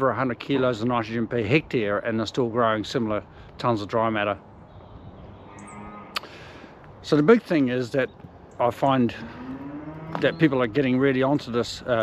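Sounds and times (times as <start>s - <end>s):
distant animal calls: 4.7s - 6.6s, 9.1s - 10.8s.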